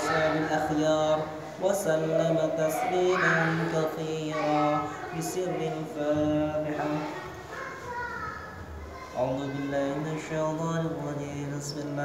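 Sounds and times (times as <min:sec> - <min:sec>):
children's voices: 0:00.0 - 0:12.0
soft indistinct voices: 0:00.0 - 0:12.0.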